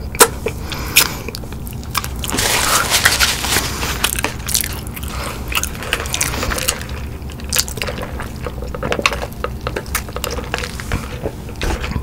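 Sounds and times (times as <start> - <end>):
crunchy chewing with mouth clicks: 0.0 - 11.9.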